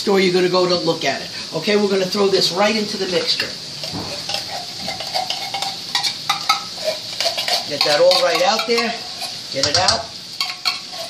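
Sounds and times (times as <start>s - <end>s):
food sizzling in a frying pan: 0.0s - 11.0s.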